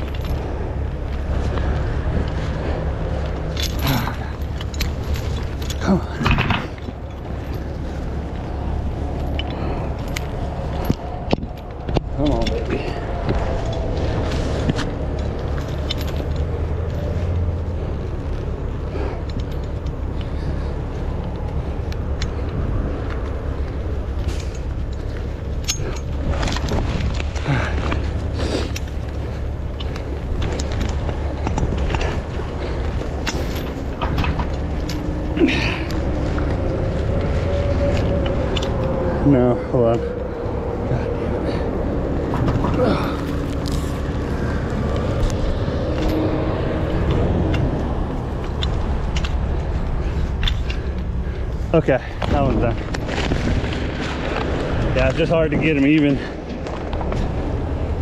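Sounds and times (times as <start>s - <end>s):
chain links clinking on hook: 0.0s - 1.6s, 3.0s - 13.9s, 15.1s - 41.2s
diesel truck engine running: 0.0s - 58.0s.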